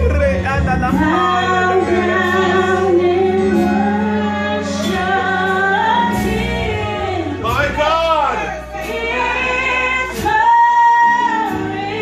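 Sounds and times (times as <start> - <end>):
woman singing into microphone: 0.9 - 7.5, 8.7 - 12.0.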